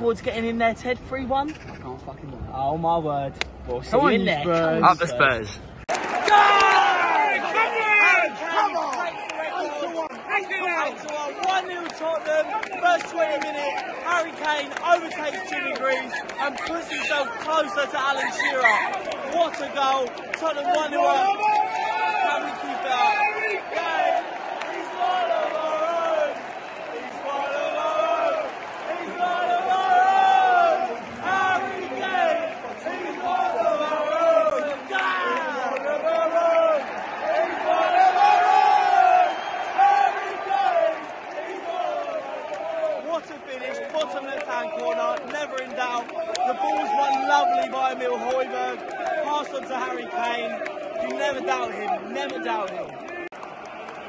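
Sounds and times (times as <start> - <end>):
fans shouting: 5.9 - 54.0
football crowd chanting and singing: 5.9 - 54.0.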